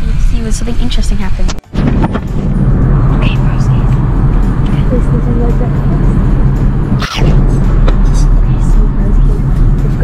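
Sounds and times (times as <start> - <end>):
aircraft cabin drone: 0.0 - 10.0.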